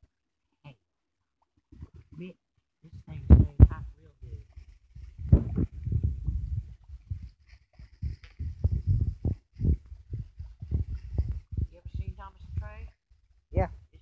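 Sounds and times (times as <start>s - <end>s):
liquid glugging from jug: 5.2s - 11.8s.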